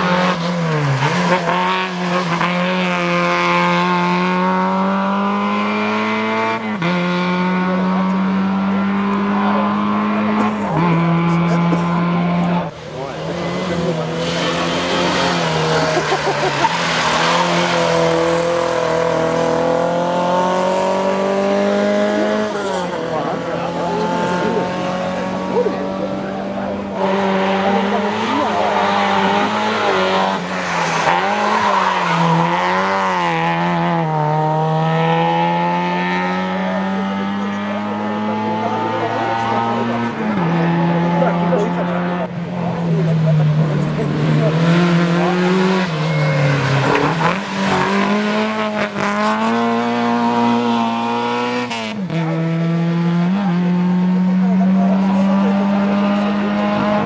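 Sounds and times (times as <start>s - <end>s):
rally car engine at high revs: 0.0s - 57.0s.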